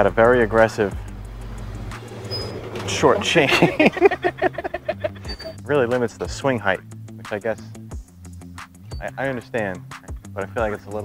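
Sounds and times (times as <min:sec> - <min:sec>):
road traffic rumble and hiss: 0:00.0 - 0:08.2.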